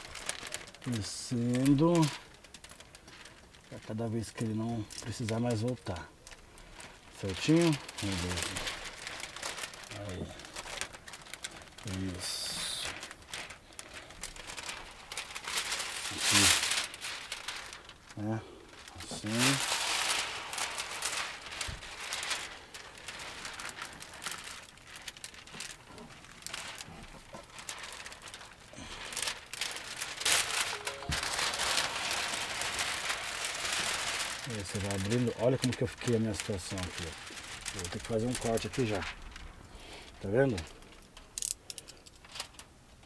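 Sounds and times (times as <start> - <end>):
plastic film crinkling on glass: 0.0 - 43.0.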